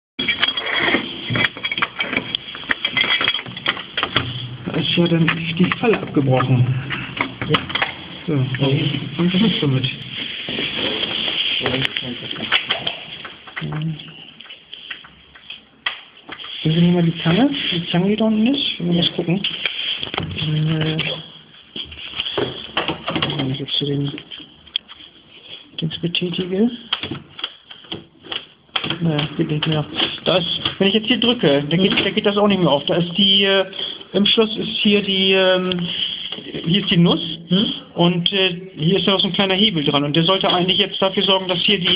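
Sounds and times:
metal shim scraping and rattling in lock: 0:00.2 - 0:08.0.

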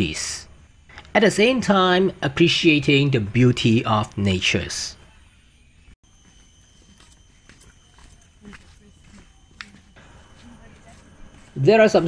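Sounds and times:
thin steady high tone: 0:00.0 - 0:12.0
footsteps on dirt trail: 0:06.0 - 0:12.0.

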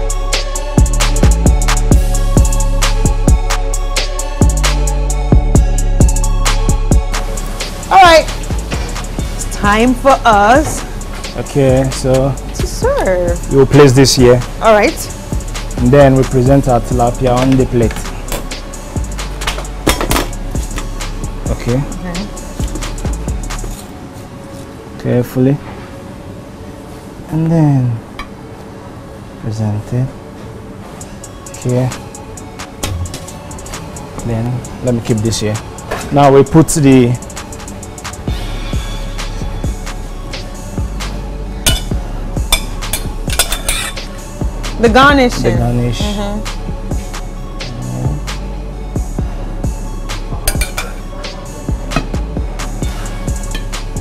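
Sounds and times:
background music: 0:00.0 - 0:54.0
metal spoon clinking on steel bowl: 0:41.7 - 0:44.0, 0:50.5 - 0:51.0
metal spatula scraping metal tray: 0:43.3 - 0:44.0.

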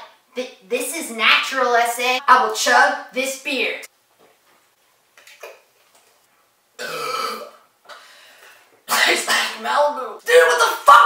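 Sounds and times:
person burping loudly: 0:06.8 - 0:07.6.

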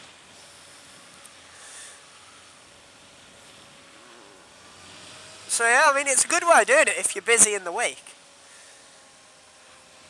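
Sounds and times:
motorcycle engine and road hum: 0:00.0 - 0:10.0.

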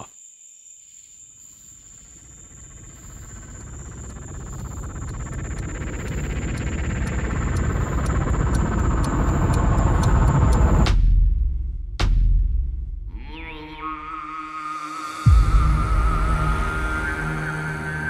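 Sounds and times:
crickets chirping: 0:00.0 - 0:10.8
rising transition swell: 0:14.0 - 0:18.0.

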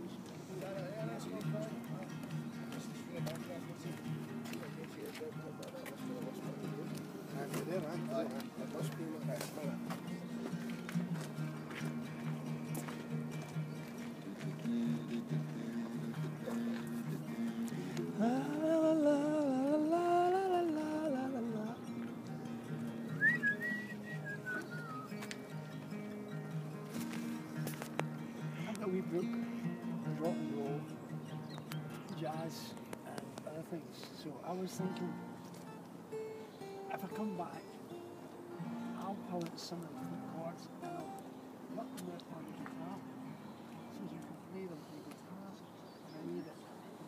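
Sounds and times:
acoustic guitar: 0:00.0 - 0:44.7
man singing: 0:17.7 - 0:21.9.

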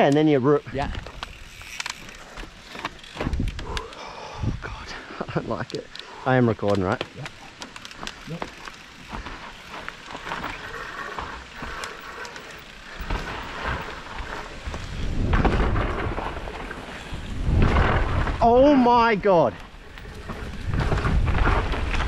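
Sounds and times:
bike rattling clicks and knocks: 0:00.0 - 0:04.1, 0:05.5 - 0:22.0
bike tyres on dirt: 0:00.0 - 0:04.4, 0:05.2 - 0:22.0
wind rumble on microphone: 0:03.2 - 0:04.9, 0:13.0 - 0:19.0, 0:19.7 - 0:22.0.

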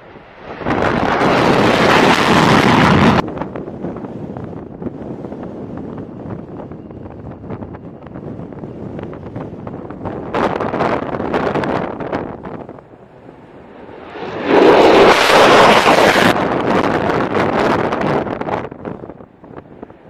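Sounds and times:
fighter jet engines roaring: 0:00.0 - 0:20.0.

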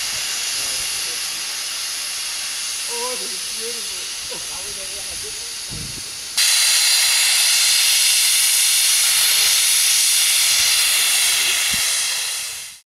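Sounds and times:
pressurized gas hissing: 0:00.0 - 0:12.8.

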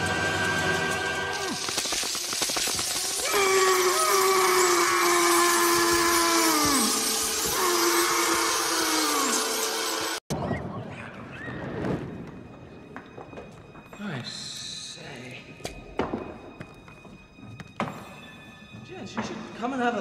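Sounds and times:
long wailing tones: 0:03.2 - 0:10.2.

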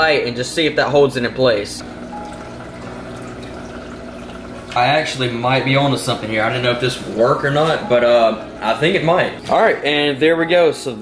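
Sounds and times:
water trickling: 0:01.0 - 0:09.6.

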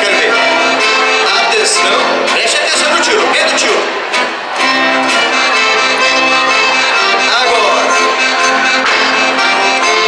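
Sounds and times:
accordion playing chords: 0:00.0 - 0:10.0.

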